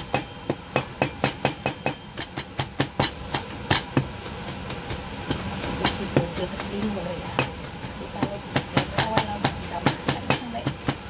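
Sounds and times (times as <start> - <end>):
cleaver chopping on cutting board: 0.1 - 4.1.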